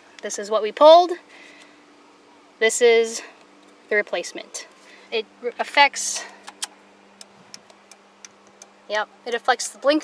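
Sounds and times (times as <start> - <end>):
turn signal relay ticking: 6.4 - 8.8.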